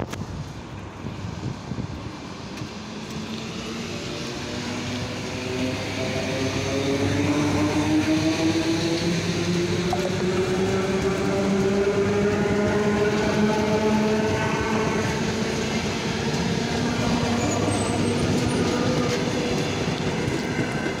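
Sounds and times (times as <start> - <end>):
wheels rumbling on rails: 0.0 - 21.0.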